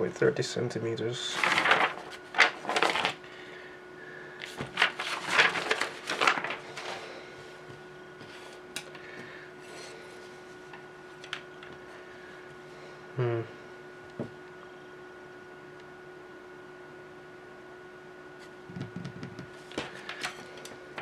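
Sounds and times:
paper sheets rustling: 1.2 - 3.3, 4.4 - 8.6, 19.6 - 21.0.

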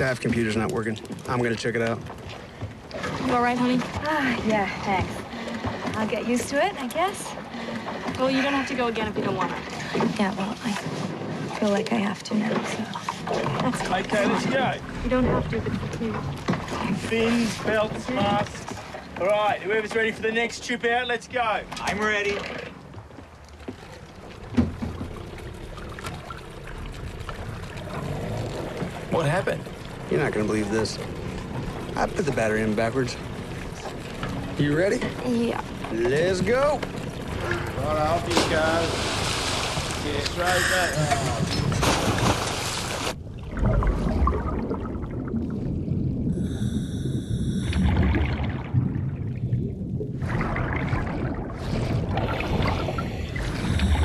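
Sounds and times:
water lapping against boat hull: 0.0 - 54.0
low underwater rumble: 22.9 - 54.0
low rumble: 41.1 - 54.0
bubbling exhalation: 43.3 - 54.0
breath through diving regulator: 46.3 - 48.1, 52.6 - 54.0.

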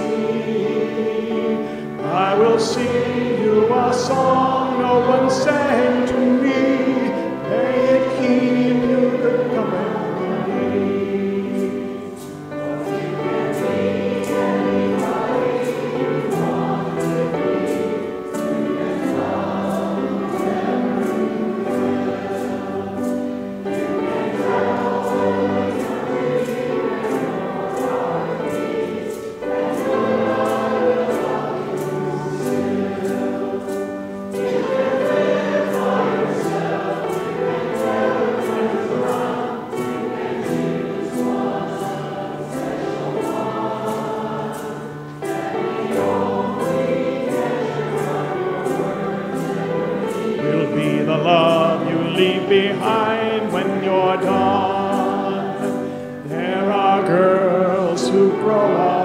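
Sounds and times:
congregation and choir singing a hymn: 0.0 - 59.0.

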